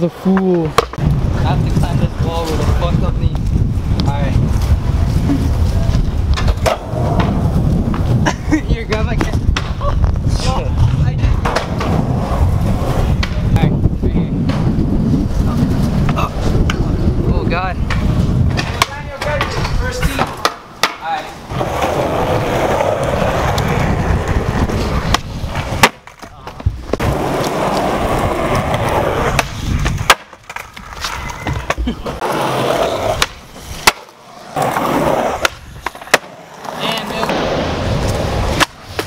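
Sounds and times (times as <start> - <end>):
skateboard wheels rolling on concrete: 0.0 - 39.0
skateboard clacks: 0.3 - 4.8, 5.5 - 10.1, 10.8 - 12.0, 12.7 - 13.6, 17.8 - 39.0.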